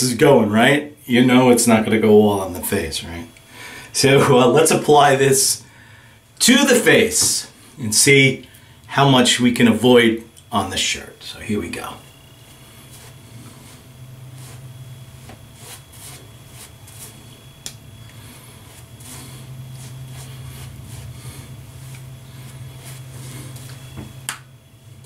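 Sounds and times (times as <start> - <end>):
low steady hum: 0.0 - 25.0
shaving brush squishy strokes: 11.6 - 24.0.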